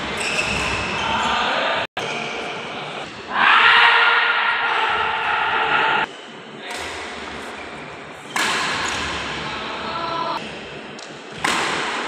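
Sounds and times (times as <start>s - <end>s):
rackets hitting shuttlecock: 6.7s - 7.3s, 8.3s - 9.2s, 11.0s - 12.0s.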